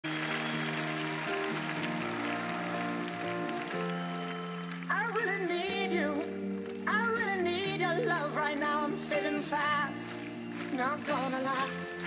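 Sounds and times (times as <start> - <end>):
audience applauding: 0.0 - 12.0
keyboard chords: 0.0 - 12.0.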